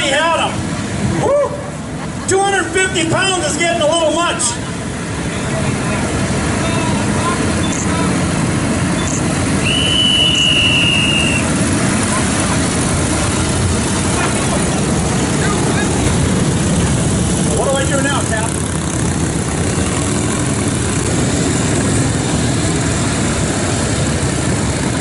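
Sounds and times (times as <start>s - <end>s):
motorcycle engines rumbling: 0.0s - 25.0s.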